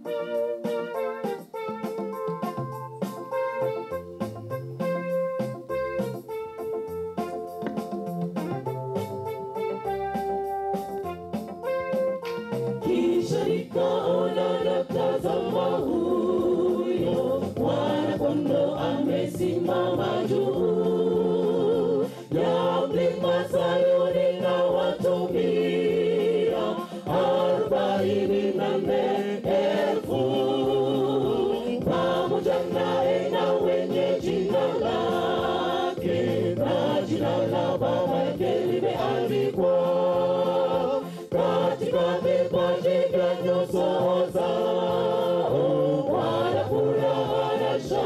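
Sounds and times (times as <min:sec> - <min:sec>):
keyboard notes: 0:00.0 - 0:48.0
choir singing gospel: 0:09.2 - 0:48.0.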